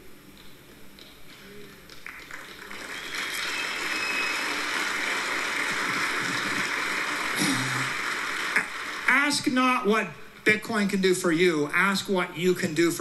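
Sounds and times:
audience applauding: 1.9 - 9.6.

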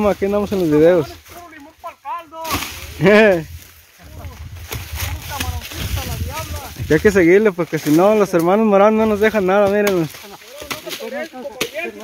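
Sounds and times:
machete chopping sugarcane: 2.4 - 2.9, 9.6 - 12.0.

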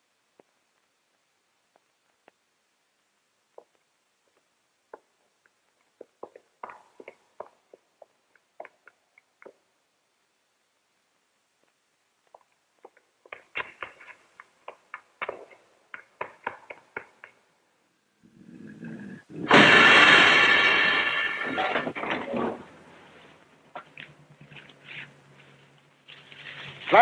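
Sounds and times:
footsteps clicking on pavement: 3.5 - 9.6, 11.6 - 17.4.

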